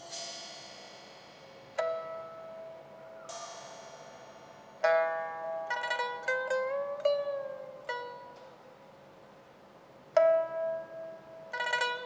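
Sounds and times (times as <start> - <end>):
high metallic percussion shimmer: 0.0 - 5.3
plucked pipa notes: 0.0 - 9.3, 10.1 - 12.0.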